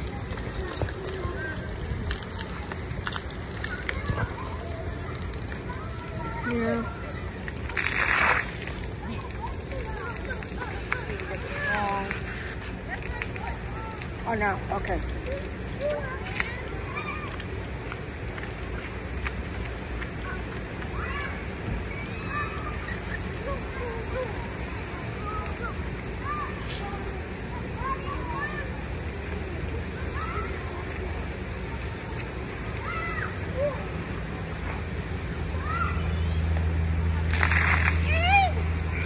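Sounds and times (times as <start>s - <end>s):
burst of splashing: 0.0s - 39.0s
sprinklers spraying water: 0.0s - 39.0s
water spray: 7.5s - 15.0s, 36.2s - 39.0s.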